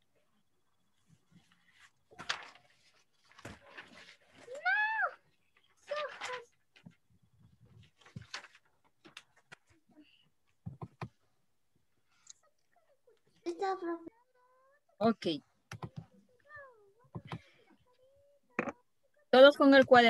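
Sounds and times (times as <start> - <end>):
paper rustling: 1.0 - 9.8.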